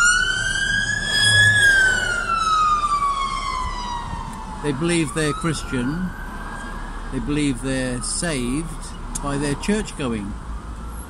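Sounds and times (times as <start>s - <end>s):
siren wailing: 0.0s - 11.0s.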